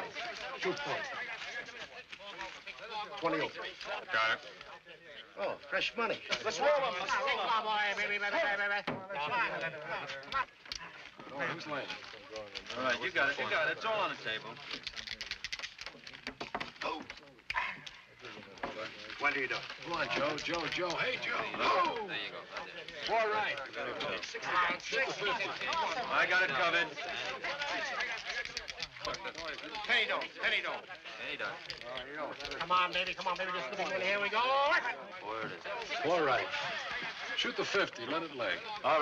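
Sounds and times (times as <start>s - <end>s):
men calling out excitedly: 0.0s - 14.6s, 16.6s - 39.0s
men talking over one another: 0.0s - 39.0s.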